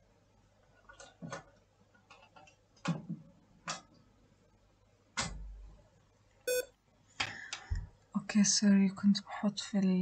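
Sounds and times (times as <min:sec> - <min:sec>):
short electronic beep: 0:06.5 - 0:06.7.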